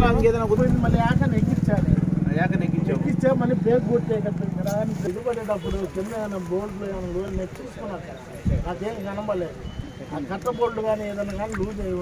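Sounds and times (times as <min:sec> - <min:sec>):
low engine hum: 0:00.0 - 0:05.2
men talking: 0:00.0 - 0:12.0.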